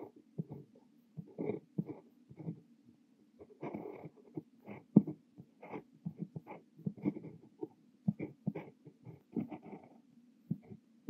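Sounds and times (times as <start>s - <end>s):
pen nib scratching on paper: 0.0s - 2.6s, 3.4s - 10.8s.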